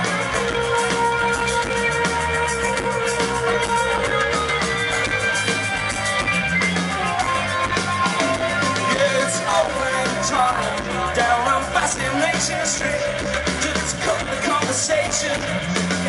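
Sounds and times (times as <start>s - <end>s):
bass line: 0.0s - 16.0s
electric guitars ringing: 0.0s - 16.0s
steady drum beat: 0.0s - 16.0s.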